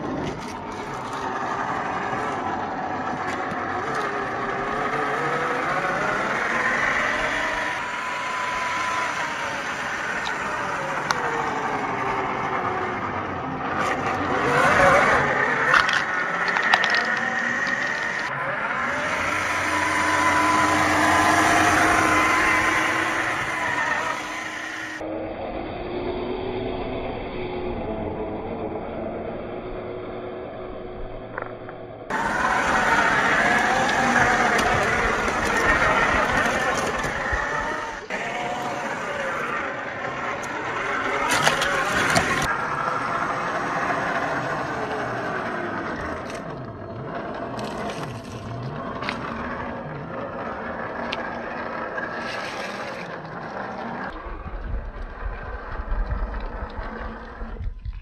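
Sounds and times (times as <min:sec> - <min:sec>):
electric motor whining: 0:00.0 - 0:25.1, 0:32.1 - 0:58.0
tyres scraping on ice and rock: 0:13.7 - 0:25.0, 0:32.1 - 0:42.6, 0:44.0 - 0:54.2.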